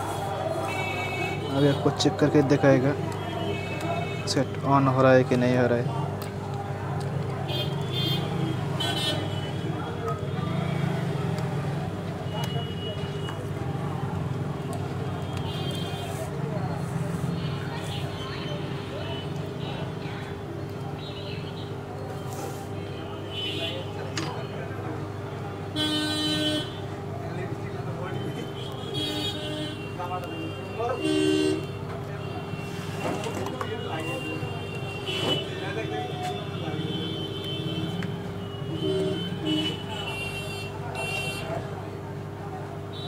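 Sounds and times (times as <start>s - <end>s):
road traffic hum: 0.0s - 43.0s
vehicle horn honking: 25.7s - 26.9s, 28.1s - 41.6s.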